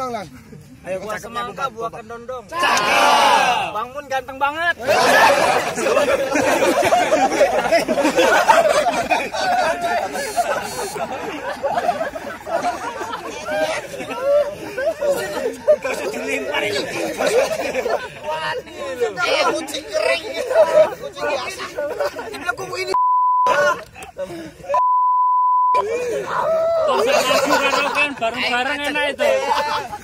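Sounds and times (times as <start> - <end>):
men talking: 0.0 - 24.8, 25.7 - 30.0
young men chattering: 0.0 - 24.8, 25.7 - 30.0
men laughing: 4.8 - 24.8, 25.8 - 30.0
censor bleep: 23.0 - 23.6, 24.8 - 25.8.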